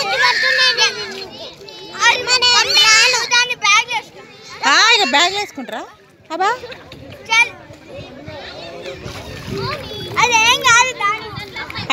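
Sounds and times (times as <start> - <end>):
children shouting: 0.0 - 5.9.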